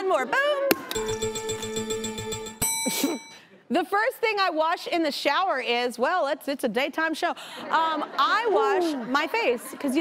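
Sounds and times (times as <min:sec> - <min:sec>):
bright bell-like ding: 0:02.6 - 0:03.4.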